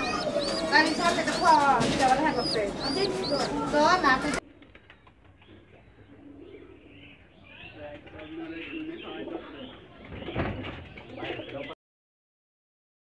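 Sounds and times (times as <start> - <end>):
pigeons cooing: 0.0 - 11.7
thump: 10.1 - 10.8.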